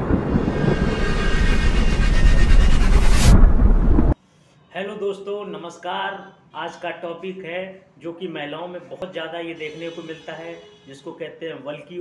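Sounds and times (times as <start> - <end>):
sharp rising sweep: 0.0 - 4.2.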